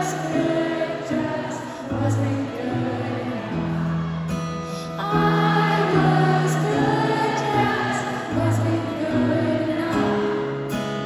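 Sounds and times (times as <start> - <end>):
audience singing along: 0.0 - 11.0.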